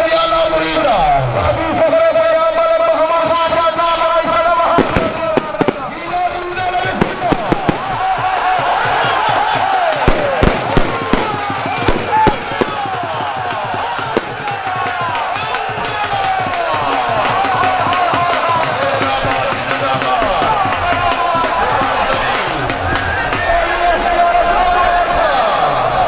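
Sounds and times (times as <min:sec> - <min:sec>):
crowd shouting and whistling: 0:00.0 - 0:26.0.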